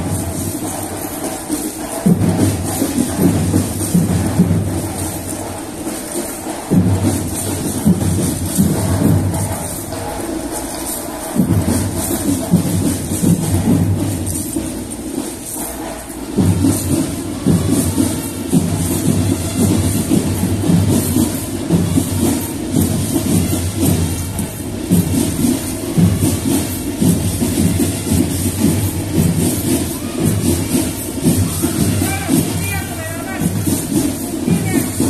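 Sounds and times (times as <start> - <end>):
marching band playing: 0.0 - 35.0.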